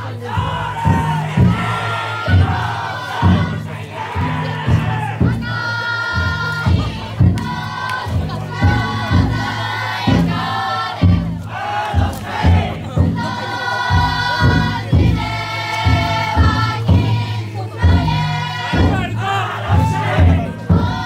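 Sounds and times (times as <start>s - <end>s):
crowd chanting: 0.0s - 21.0s
drum beaten in steady rhythm: 0.0s - 21.0s.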